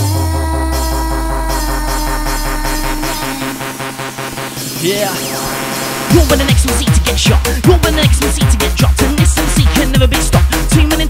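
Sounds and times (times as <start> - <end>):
dance music: 0.0 - 11.0.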